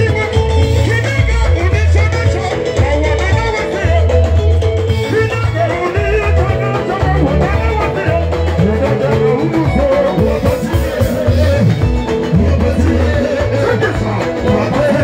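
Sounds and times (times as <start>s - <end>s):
guitar: 0.0s - 15.0s
live dance band playing: 0.0s - 15.0s
person singing: 0.0s - 15.0s
pulsing bass line: 0.0s - 15.0s.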